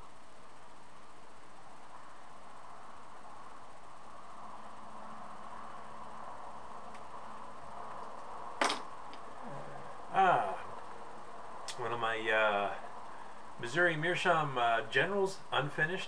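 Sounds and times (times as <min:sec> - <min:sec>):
background hiss: 0:00.0 - 0:16.0
faint whine: 0:00.0 - 0:16.0.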